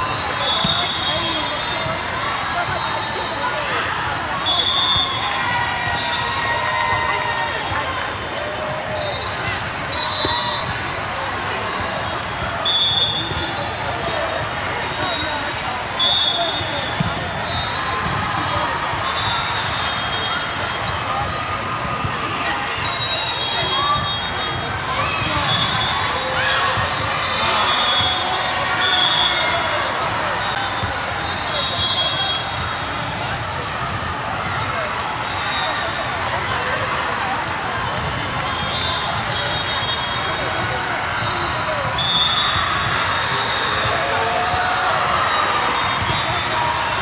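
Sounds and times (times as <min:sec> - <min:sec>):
chatter of many voices: 0:00.0 - 0:47.0.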